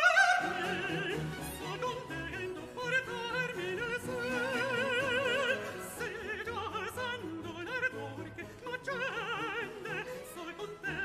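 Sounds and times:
countertenor singing: 0.0 - 11.0
string orchestra: 0.0 - 11.0.

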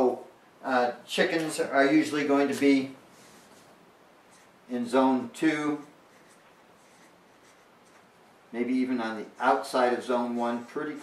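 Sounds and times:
marker drawing on paper: 5.8 - 8.2.

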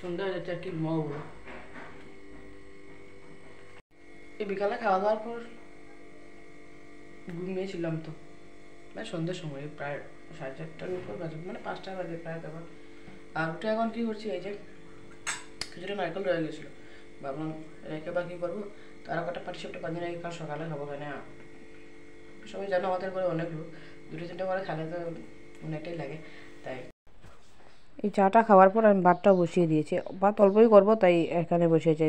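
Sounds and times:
faint high whine: 0.0 - 26.9
steady electrical hum: 0.0 - 32.0
kitchenware clatter: 15.2 - 15.6
sharp clink of kitchenware: 15.2 - 15.6.

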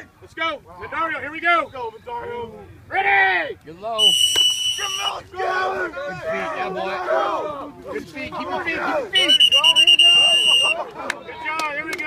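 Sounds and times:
voices shouting: 0.0 - 12.0
shrill whistle blast: 4.0 - 5.2, 9.2 - 10.8.

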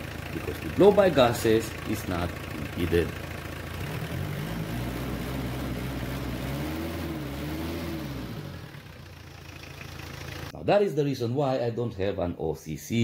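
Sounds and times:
diesel engine idling: 0.0 - 10.6.

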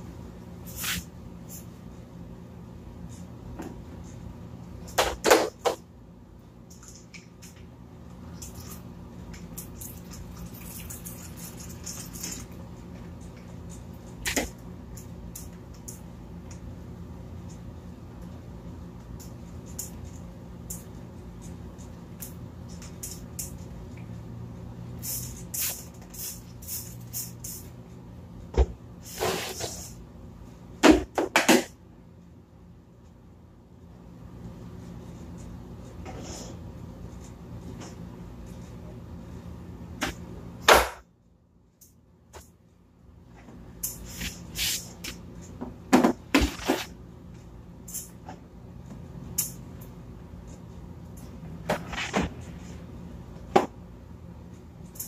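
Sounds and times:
steady low hum: 0.0 - 55.0.

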